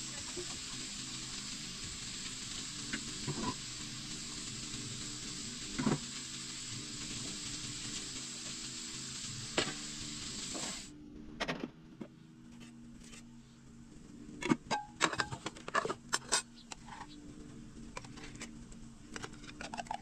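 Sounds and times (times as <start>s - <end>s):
vegetables sizzling in a pan: 0.0s - 10.9s.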